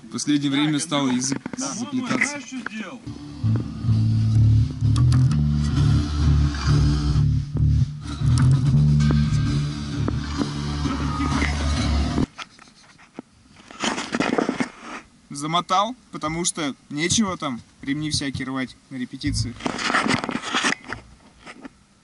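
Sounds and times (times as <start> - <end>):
electric bass guitar: 3.1 - 12.3, 19.3 - 19.6.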